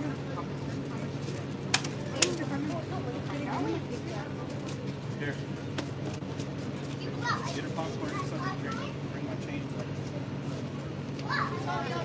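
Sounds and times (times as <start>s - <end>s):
children talking and playing: 0.0s - 12.0s.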